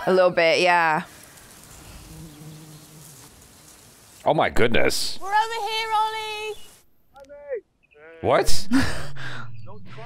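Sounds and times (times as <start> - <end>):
quiet outdoor ambience: 0.0 - 10.0
flying insect buzzing: 1.0 - 4.2.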